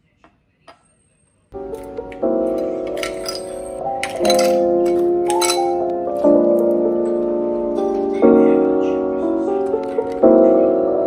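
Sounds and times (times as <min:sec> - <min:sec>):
music with keyboard chords: 0:01.6 - 0:11.0
ice cubes clinking in glass: 0:01.7 - 0:05.8.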